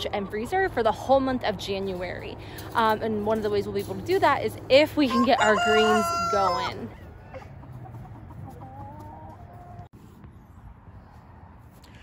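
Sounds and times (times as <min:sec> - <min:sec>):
hens clucking: 0:02.7 - 0:09.9.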